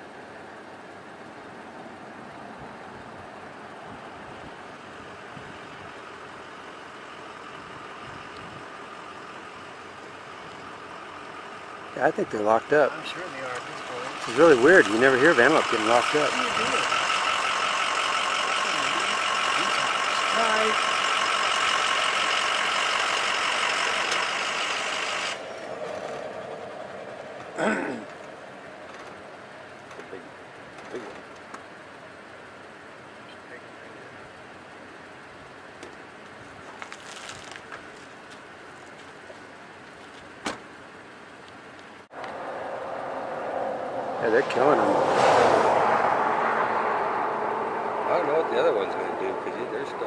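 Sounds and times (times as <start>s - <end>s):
vehicle engine idling: 0.0s - 50.0s.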